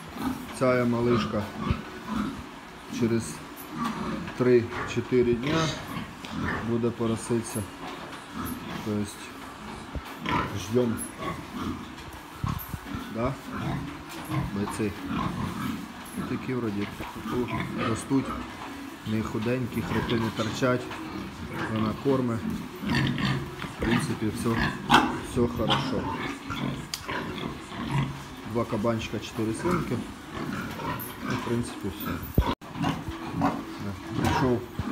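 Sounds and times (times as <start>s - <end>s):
pigs grunting: 0.0s - 34.9s.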